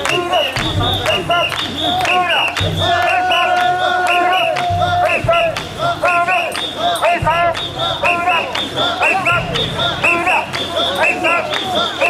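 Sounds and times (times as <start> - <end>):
men chanting shouted calls: 0.0 - 12.0.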